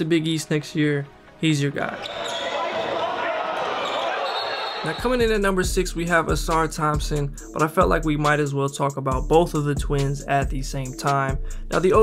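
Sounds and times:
basketball court noise: 1.9 - 5.1
crowd voices: 2.0 - 5.0.

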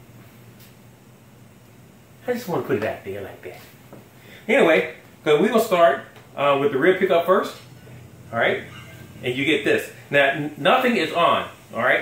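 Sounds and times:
amplifier hum and hiss: 0.0 - 12.0.

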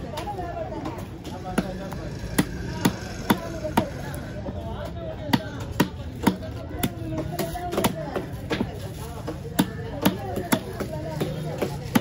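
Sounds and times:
cleaver chopping fish on wood: 5.3 - 8.7, 9.3 - 12.0.

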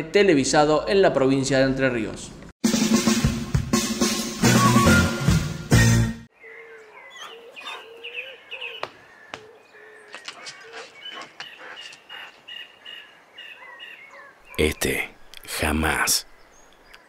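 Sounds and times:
birds chirping and calling: 6.3 - 17.0.

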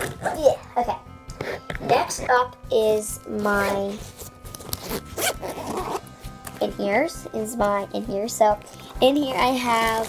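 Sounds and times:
zipper rasping open: 3.6 - 6.1.

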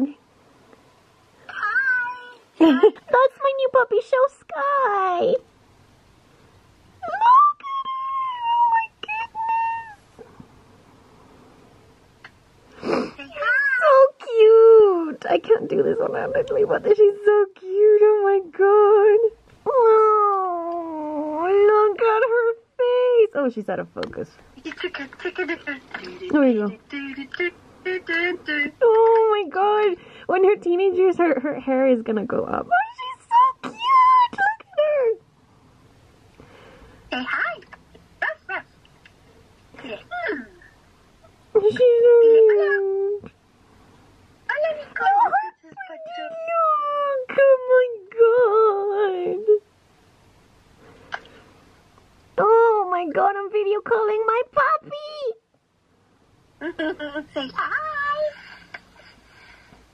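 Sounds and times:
woman cooing: 1.5 - 3.2, 7.0 - 10.0, 12.8 - 23.2, 41.6 - 43.3.

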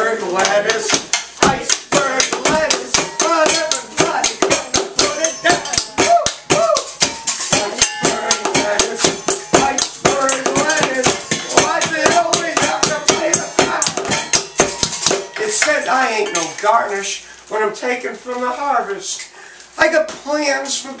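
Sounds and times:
voices singing and calling: 0.0 - 19.4
spoons and hands beating on pots: 0.3 - 16.8.

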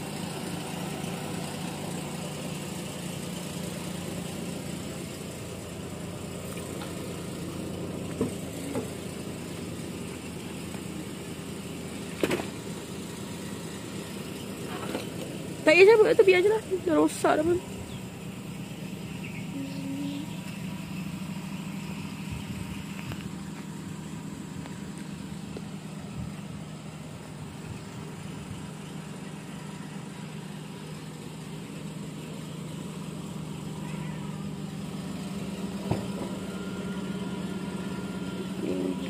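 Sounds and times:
car engine idling: 0.0 - 39.0.

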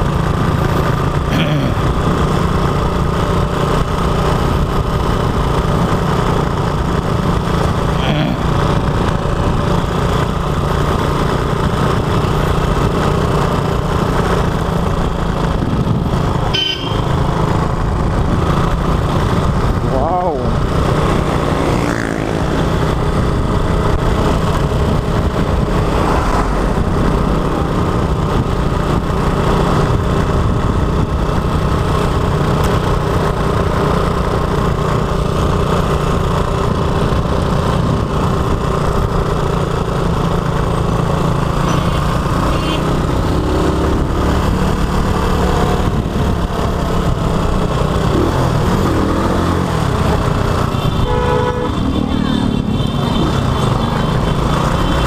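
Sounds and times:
road and wind noise: 0.0 - 55.0
small motorcycle engine running: 0.0 - 55.0.

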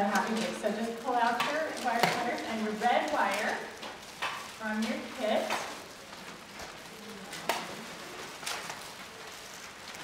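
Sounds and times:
plastic packaging rustling: 0.0 - 10.0.

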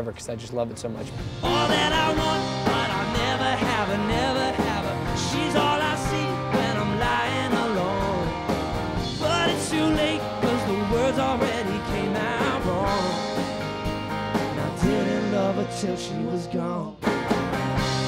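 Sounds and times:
steady drum beat: 0.9 - 15.8, 17.0 - 18.0
strummed acoustic guitar: 1.1 - 18.0
man singing: 1.3 - 13.4, 14.5 - 17.1.

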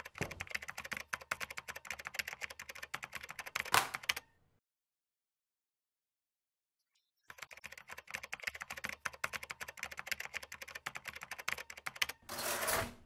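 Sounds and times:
typing on computer keyboard: 0.0 - 4.3, 7.2 - 12.2.

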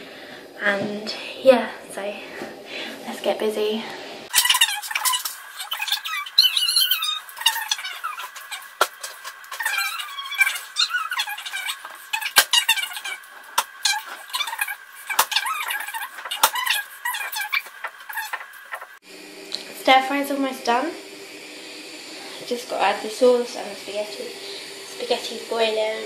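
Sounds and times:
high squeaky sped-up chatter: 4.3 - 19.0.

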